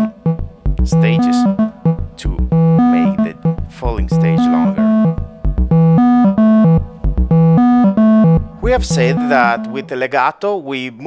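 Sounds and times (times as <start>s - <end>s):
synthesizer playing buzzy notes: 0.0s - 10.0s.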